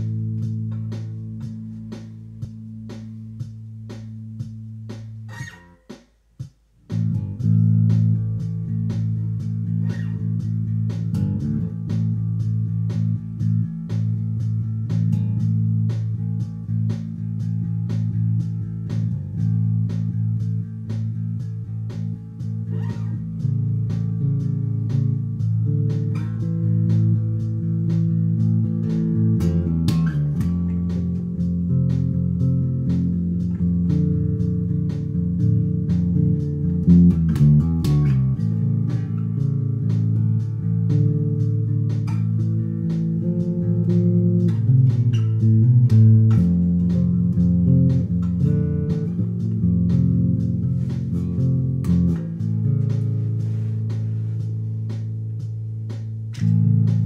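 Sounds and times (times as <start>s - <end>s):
electric bass guitar fingerstyle: 0.0s - 57.0s.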